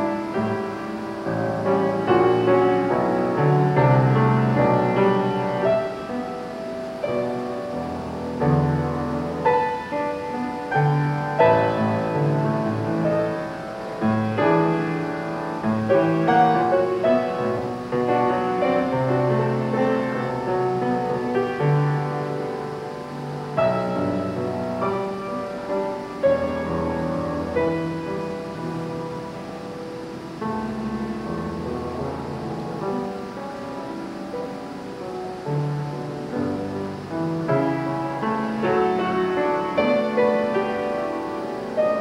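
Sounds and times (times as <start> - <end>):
grand piano playing: 0.0 - 42.0.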